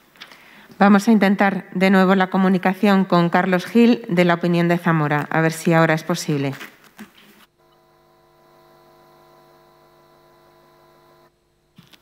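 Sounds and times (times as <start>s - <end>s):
electrical buzzing hum: 7.5s - 12.0s.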